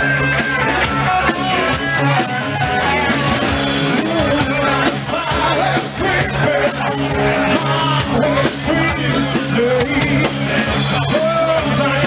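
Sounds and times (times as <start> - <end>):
electric guitars: 0.0 - 12.0
live rock band playing: 0.0 - 12.0
person singing: 0.0 - 12.0.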